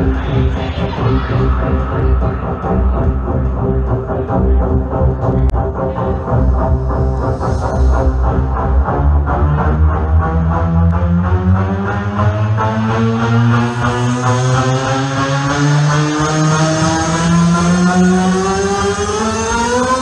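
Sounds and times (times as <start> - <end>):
hard trance music: 0.0 - 20.0.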